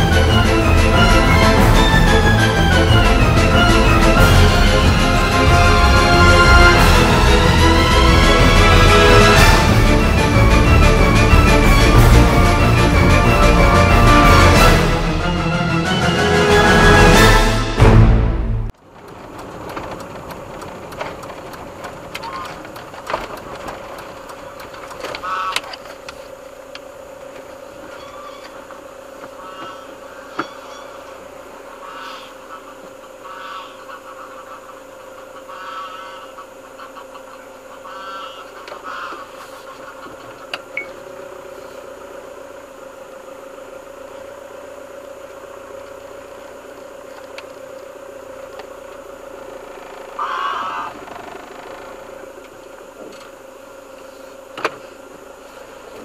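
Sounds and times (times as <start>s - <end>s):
van engine humming: 0.0s - 56.0s
short pitched animal calls: 27.9s - 28.7s, 29.3s - 40.5s, 49.5s - 52.2s.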